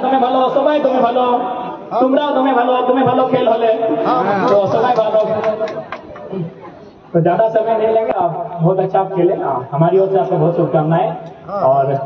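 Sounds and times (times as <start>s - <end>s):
crowd chatter: 0.0s - 8.5s
man speaking over a pa: 4.0s - 5.1s.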